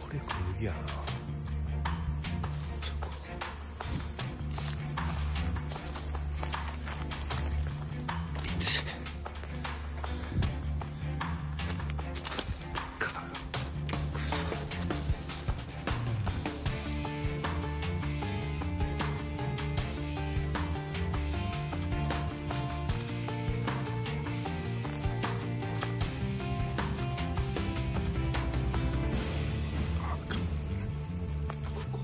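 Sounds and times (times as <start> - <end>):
crickets trilling: 0.0 - 32.0
low background music: 0.0 - 32.0
footsteps: 2.5 - 16.9.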